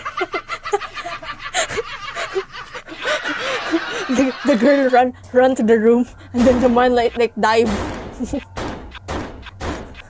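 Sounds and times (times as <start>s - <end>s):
young woman laughing: 0.0s - 5.2s.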